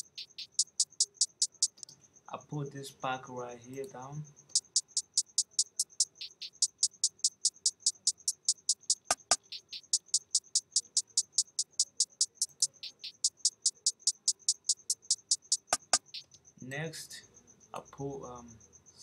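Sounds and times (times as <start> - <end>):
hi-hat pattern ticking: 0.0 - 1.9, 3.8 - 16.4
sharp clicks: 0.0 - 2.0, 3.7 - 16.4.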